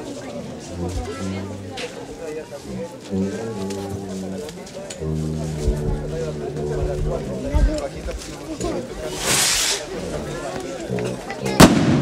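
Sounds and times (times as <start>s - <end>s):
crowd chattering: 0.0s - 12.0s
firework hissing upward: 9.1s - 9.9s
firework bang: 11.6s - 12.0s.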